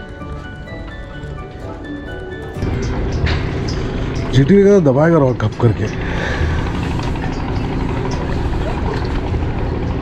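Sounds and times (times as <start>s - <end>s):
boat engine running: 0.0s - 10.0s.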